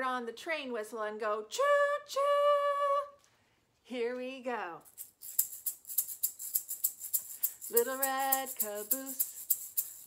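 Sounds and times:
egg shaker shaken rhythmically: 0:04.9 - 0:10.0.

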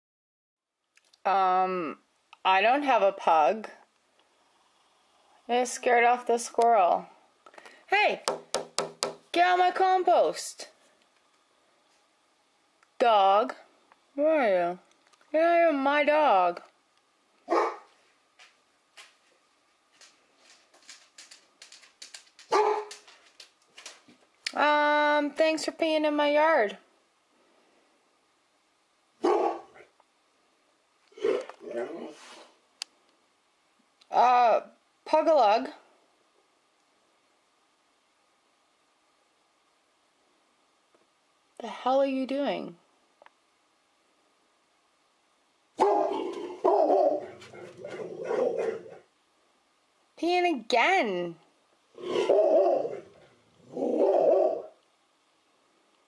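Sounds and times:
dog barking: 0:17.5 - 0:17.9, 0:22.5 - 0:22.9, 0:29.2 - 0:29.9, 0:45.8 - 0:49.0.

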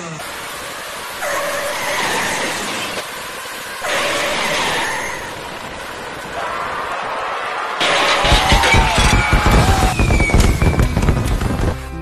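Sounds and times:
steady noisy background: 0:00.0 - 0:12.0.

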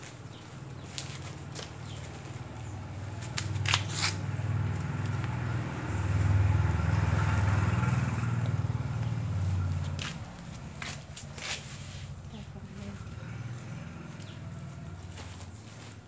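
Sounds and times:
passing vehicle engine drone: 0:01.9 - 0:16.0.

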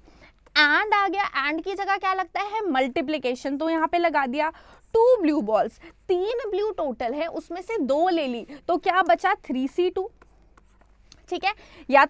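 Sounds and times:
woman speaking: 0:00.6 - 0:10.2, 0:11.2 - 0:12.0.

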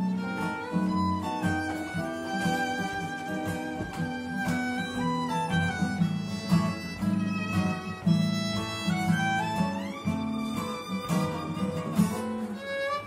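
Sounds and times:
acoustic guitars strumming chords: 0:00.0 - 0:13.0
violin gliding melody: 0:00.0 - 0:13.0.

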